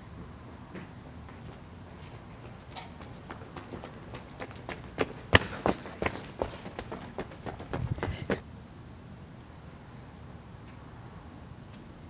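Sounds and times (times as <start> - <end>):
person running on hard ground: 1.3 - 8.4.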